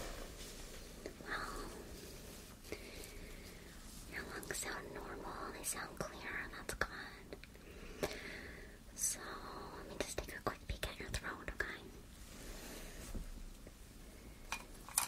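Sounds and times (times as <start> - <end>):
person whispering: 1.1 - 1.9, 4.1 - 7.4, 9.0 - 12.0.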